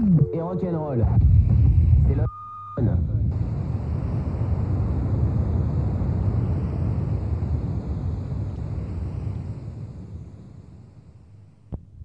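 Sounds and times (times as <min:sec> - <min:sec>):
low steady rumbling: 0:01.0 - 0:12.0.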